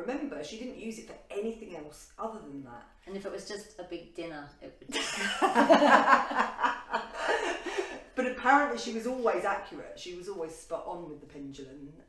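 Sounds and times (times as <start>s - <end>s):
women laughing: 4.9s - 8.1s.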